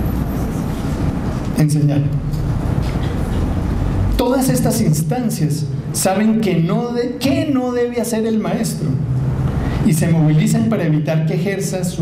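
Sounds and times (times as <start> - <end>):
loud rumbling background noise: 0.0 - 12.0.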